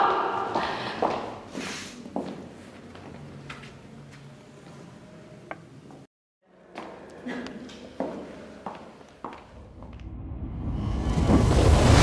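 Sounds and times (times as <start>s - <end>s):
footsteps on hard floor: 8.0s - 10.1s.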